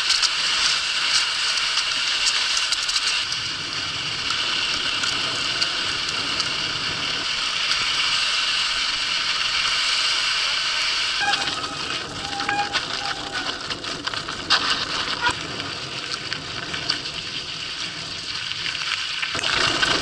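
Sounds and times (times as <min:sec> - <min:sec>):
tyres rolling over snow: 0:00.0 - 0:20.0
bike frame rattling: 0:11.2 - 0:20.0.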